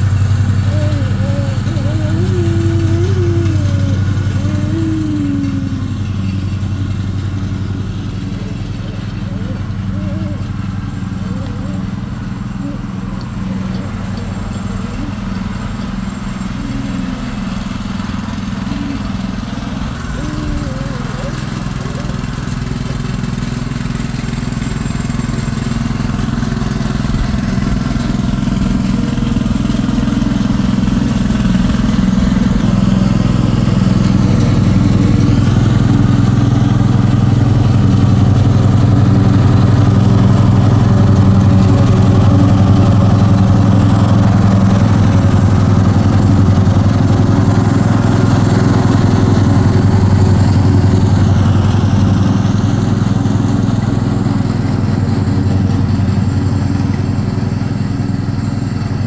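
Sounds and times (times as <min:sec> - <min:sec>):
lawn mower engine running: 0:00.0 - 0:59.0.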